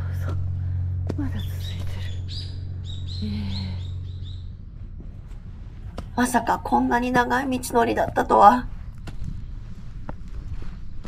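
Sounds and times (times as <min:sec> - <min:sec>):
low steady hum: 0:00.0 - 0:11.0
songbird chirping: 0:01.0 - 0:04.9.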